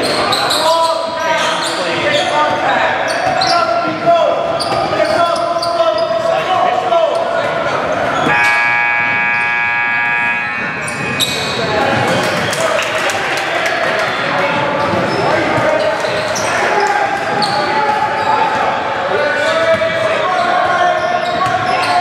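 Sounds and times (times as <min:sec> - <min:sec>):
voices echoing in gym: 0:00.0 - 0:22.0
gym buzzer: 0:08.2 - 0:12.6.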